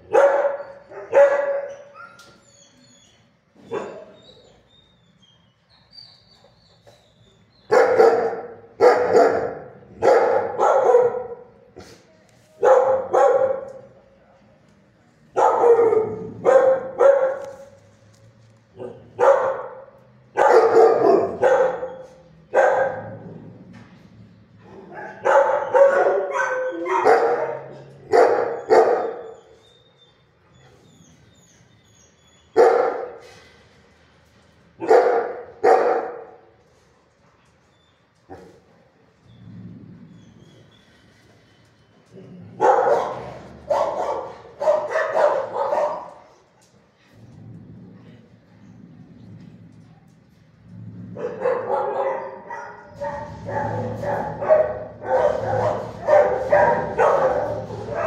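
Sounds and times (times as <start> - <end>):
dog barking loudly: 0.0 - 1.7, 7.7 - 11.5, 12.6 - 13.8, 15.3 - 17.6, 18.8 - 23.2, 24.9 - 29.3, 32.6 - 33.2, 34.8 - 36.4, 42.6 - 46.2, 51.2 - 58.0.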